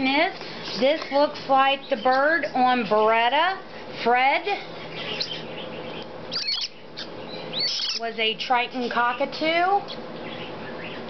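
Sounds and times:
bird chicks squeaky begging calls: 0:04.8 - 0:08.2, 0:09.8 - 0:11.0.

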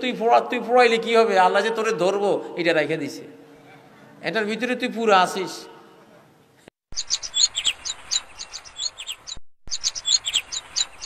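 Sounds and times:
small birds chirping: 0:06.9 - 0:11.0.

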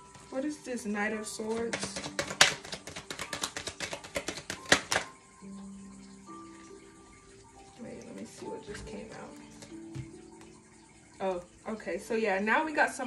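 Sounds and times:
soft background music: 0:00.0 - 0:13.0
cards shuffled by hand: 0:01.6 - 0:05.1.

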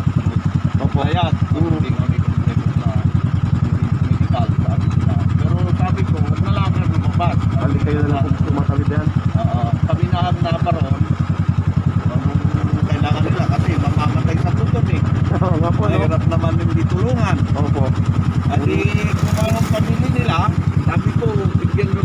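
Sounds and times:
motorcycle engine idling: 0:00.0 - 0:22.0
voices talking: 0:00.0 - 0:22.0.

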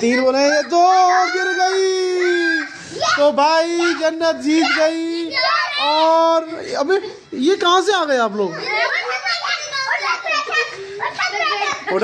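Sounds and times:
children talking and calling out: 0:00.0 - 0:12.0.

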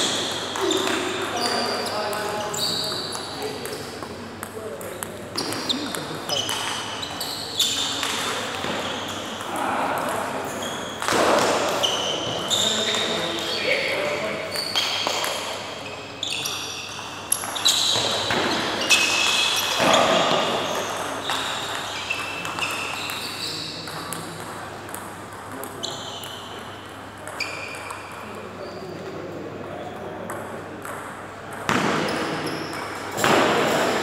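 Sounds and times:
sports shoes squeaking: 0:00.0 - 0:03.6, 0:05.3 - 0:09.4, 0:10.4 - 0:24.0, 0:25.8 - 0:26.6, 0:27.2 - 0:28.8, 0:31.7 - 0:34.0.

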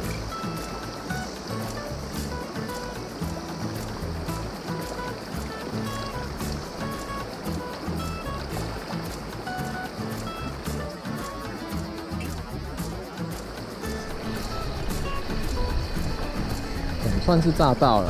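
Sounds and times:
background music with steady beat: 0:00.0 - 0:18.0
pulsing bass line: 0:01.1 - 0:04.7, 0:05.4 - 0:18.0.

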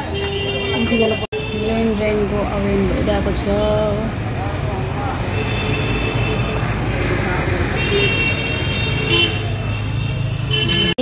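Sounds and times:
vehicle horns: 0:00.0 - 0:02.2, 0:05.1 - 0:11.0.

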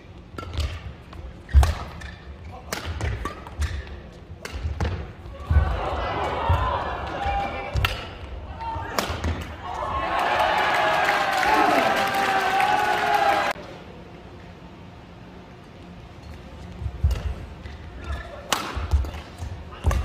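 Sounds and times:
racket striking shuttlecock: 0:01.5 - 0:05.1, 0:07.7 - 0:08.2, 0:18.5 - 0:20.0.

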